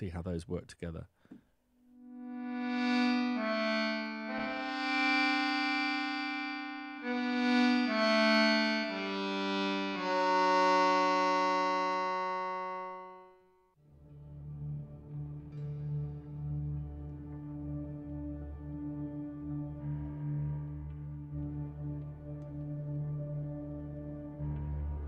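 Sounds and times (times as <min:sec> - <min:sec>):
accordion notes and chords: 0:02.0 - 0:13.5, 0:17.3 - 0:25.0.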